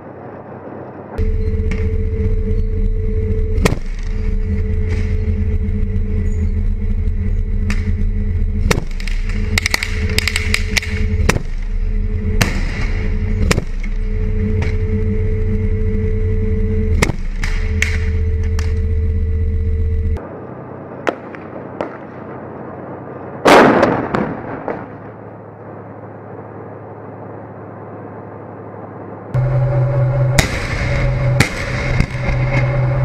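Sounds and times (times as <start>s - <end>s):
armoured vehicle engine droning: 0.0s - 23.5s, 24.6s - 33.0s
gunfire cracks: 23.4s - 25.0s.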